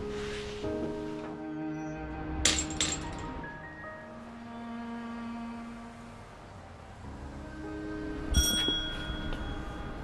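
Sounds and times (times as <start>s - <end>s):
doorbell ringing: 8.3s - 10.0s.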